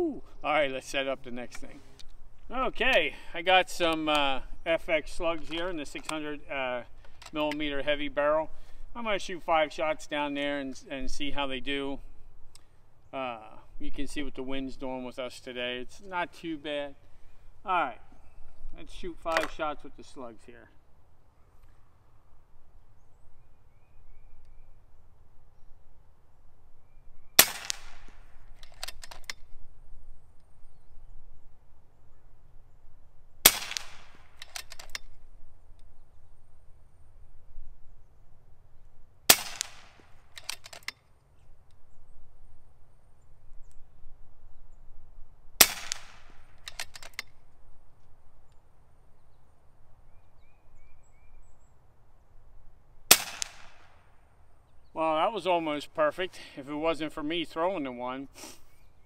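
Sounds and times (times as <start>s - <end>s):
air rifle shots: 27.4s - 29.4s, 33.4s - 35.0s, 39.3s - 40.9s, 45.6s - 47.3s, 53.1s - 54.0s.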